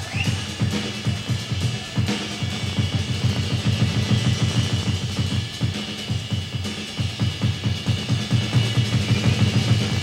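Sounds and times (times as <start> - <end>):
cymbal wash: 0.0 - 10.0
fast drum roll on toms: 0.2 - 10.0.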